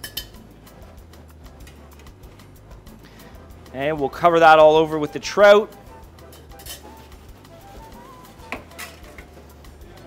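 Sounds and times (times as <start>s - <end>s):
utensils clinking on ceramic plates: 0.0s - 0.4s, 6.2s - 7.1s, 8.5s - 9.3s
soft background music: 0.0s - 10.0s.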